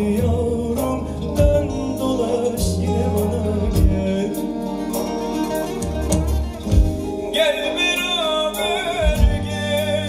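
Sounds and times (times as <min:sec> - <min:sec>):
drum kit steady beat: 0:00.0 - 0:10.0
electric guitar: 0:00.0 - 0:10.0
folk band playing: 0:00.0 - 0:10.0
low bass line: 0:00.0 - 0:10.0
lute playing: 0:00.0 - 0:10.0.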